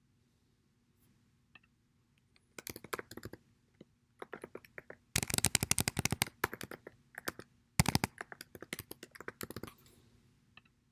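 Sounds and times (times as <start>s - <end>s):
fast typing on a keyboard: 2.6s - 3.4s, 4.2s - 9.8s.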